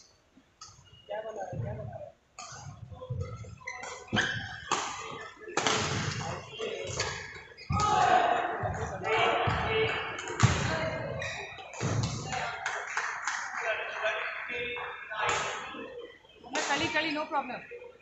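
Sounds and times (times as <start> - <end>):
voices in sports hall: 0.0 - 18.0
racket hitting shuttlecock: 2.4 - 6.3.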